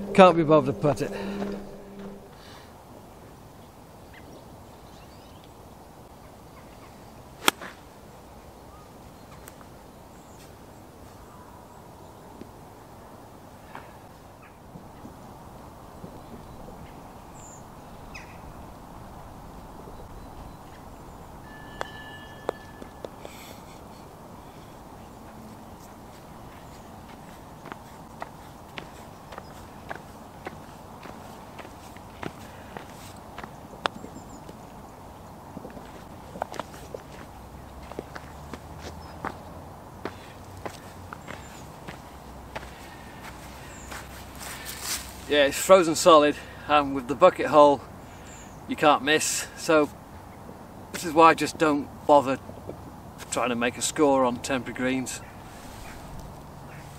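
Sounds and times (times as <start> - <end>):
bird chirp: 16.0 - 18.6, 19.8 - 25.3
spiked shoe footsteps on frozen grass: 25.8 - 34.6, 40.0 - 45.3.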